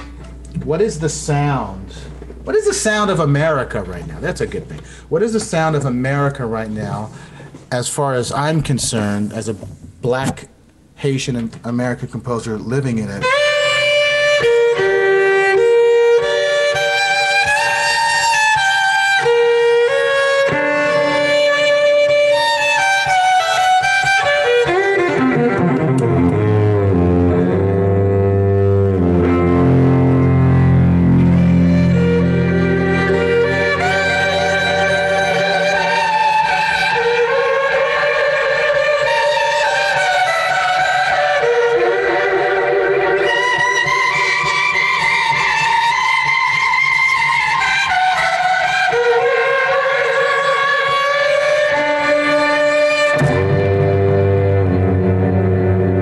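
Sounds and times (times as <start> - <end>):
amplified violin chords: 13.0 - 56.0.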